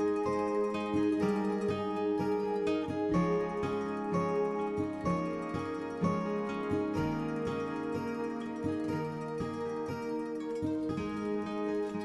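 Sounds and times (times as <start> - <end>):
plucked string music: 0.0 - 12.0.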